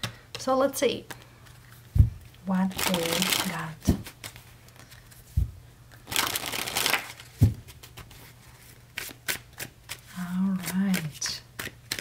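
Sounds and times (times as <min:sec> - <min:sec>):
cards being shuffled: 0:01.1 - 0:12.0.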